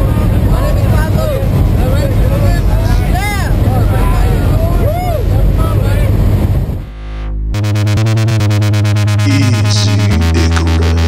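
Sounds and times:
raised voices: 9.2 - 11.0.

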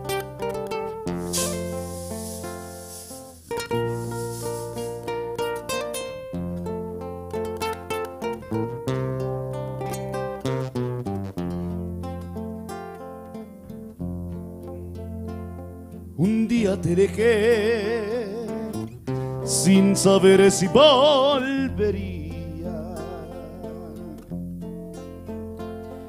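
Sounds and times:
nylon-string guitars picking: 0.0 - 26.0.

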